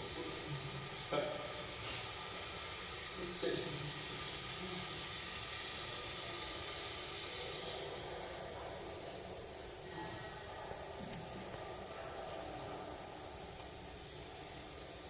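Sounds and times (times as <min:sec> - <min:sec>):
television soundtrack hiss: 0:00.0 - 0:15.0.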